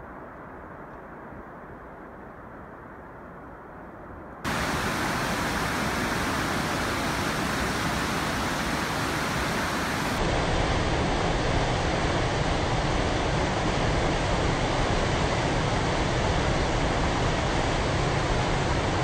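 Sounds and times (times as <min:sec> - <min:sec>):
whitewater rapids rushing: 0:04.5 - 0:10.3
distant waterfall roar: 0:04.5 - 0:19.0.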